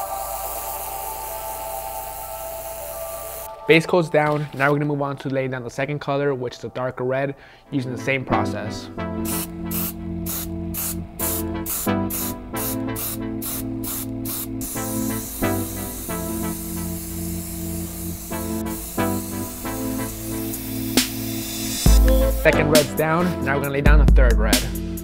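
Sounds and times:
airbrush spraying hiss: 0.0s - 3.5s, 9.2s - 22.6s
background music with a beat: 8.4s - 25.0s.

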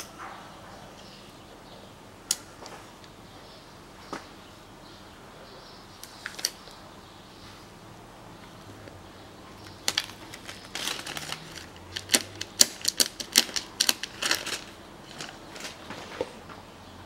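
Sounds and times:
plastic film peeling crackle: 9.7s - 15.9s.

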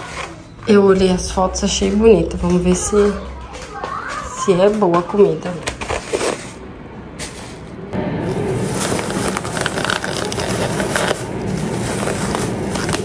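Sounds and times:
plastic bag rustling: 8.4s - 13.0s.

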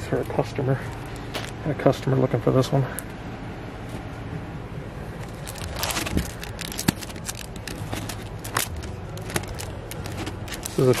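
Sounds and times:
quick light clicks and rustles: 5.2s - 11.0s
record jackets flipped by hand: 5.2s - 11.0s.

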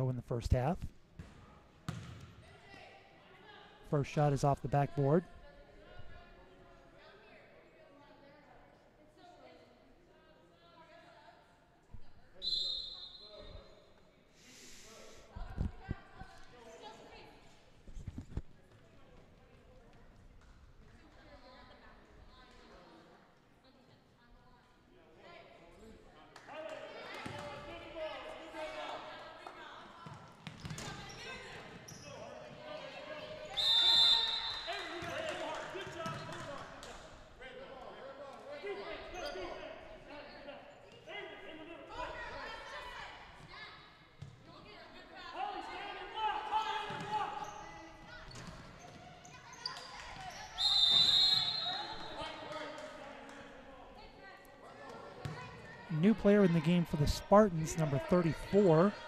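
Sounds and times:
voices echoing in gymnasium: 0.0s - 59.0s
basketball bouncing on hardwood: 1.9s - 2.2s.

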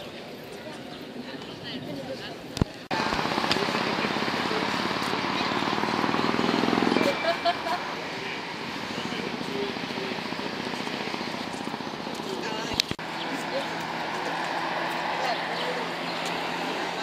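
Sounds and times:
voices of passers-by: 0.0s - 17.0s
vehicle passing close by: 2.9s - 17.0s.

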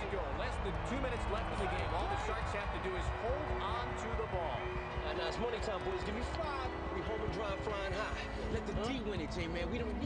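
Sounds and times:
men talking and shouting: 0.0s - 10.0s.

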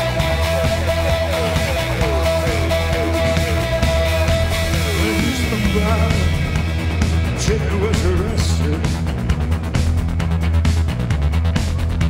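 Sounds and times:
live punk rock band: 0.0s - 12.0s.

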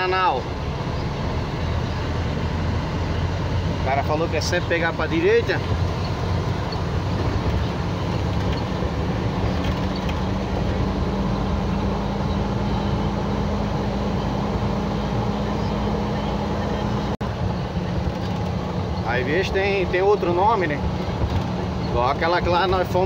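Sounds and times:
road noise rumble: 0.0s - 23.0s
truck engine drone: 0.0s - 23.0s.

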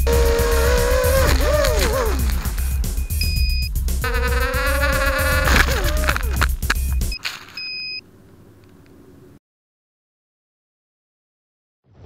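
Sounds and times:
music: 0.0s - 7.2s
electronic beep: 2.5s - 4.4s, 6.7s - 8.0s.

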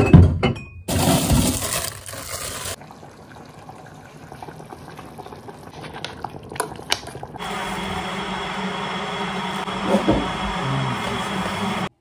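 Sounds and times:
food bubbling in pots: 1.7s - 9.1s.

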